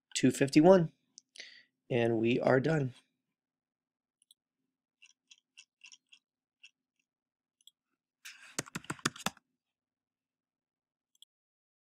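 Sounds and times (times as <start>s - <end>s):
computer mouse clicking: 7.6s - 9.4s.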